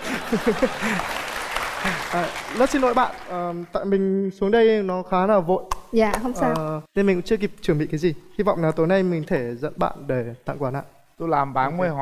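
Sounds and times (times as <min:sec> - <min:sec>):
audience laughing: 0:00.0 - 0:03.2
audience clapping: 0:00.0 - 0:03.8.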